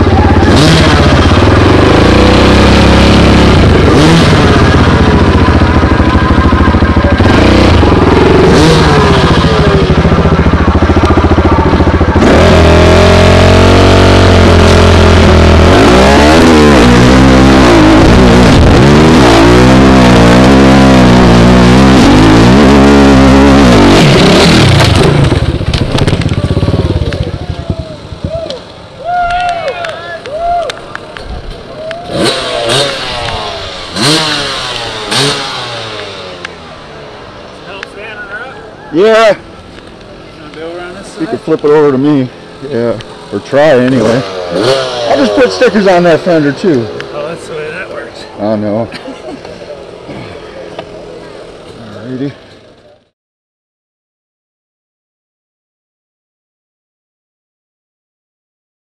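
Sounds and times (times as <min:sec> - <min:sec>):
voices: 0:00.0 - 0:01.4, 0:04.6 - 0:13.1, 0:26.2 - 0:35.1, 0:35.8 - 0:53.1
dirt bike engine revving: 0:00.0 - 0:28.3, 0:32.0 - 0:37.6, 0:41.0 - 0:49.0.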